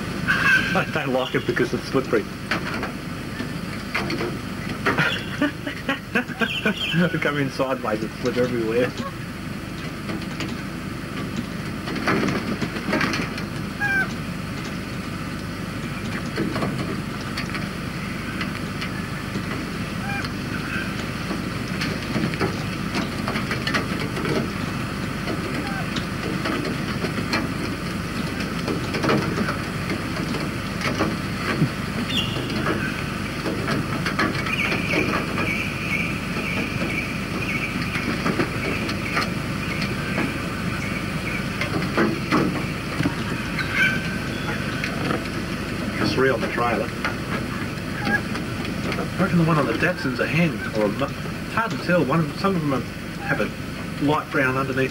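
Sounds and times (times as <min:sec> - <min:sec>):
birds chirping: 0:00.0 - 0:54.9
high wavering bird call: 0:06.4 - 0:07.1, 0:13.8 - 0:14.2, 0:19.9 - 0:21.0, 0:25.5 - 0:26.0, 0:43.2 - 0:44.9.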